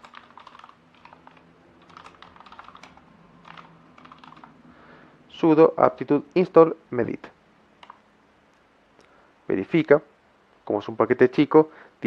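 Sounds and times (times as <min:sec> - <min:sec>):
typing on a computer keyboard: 0:00.0 - 0:04.6, 0:07.8 - 0:08.0.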